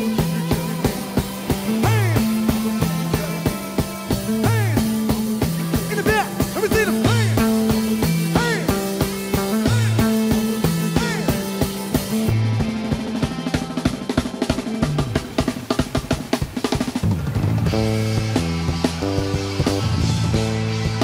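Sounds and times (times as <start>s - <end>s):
live band music: 0.0s - 21.0s
rapid drum fill: 0.0s - 21.0s.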